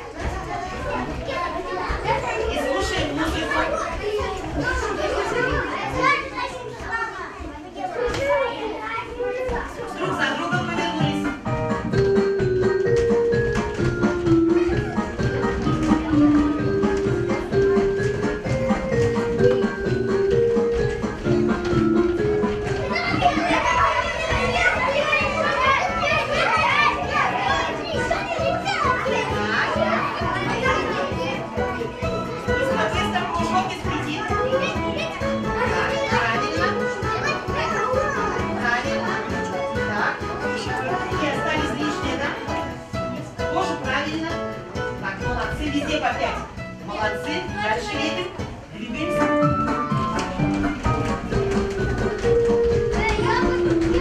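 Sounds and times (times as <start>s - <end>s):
children talking and calling out: 0.0s - 54.0s
background music: 10.0s - 54.0s.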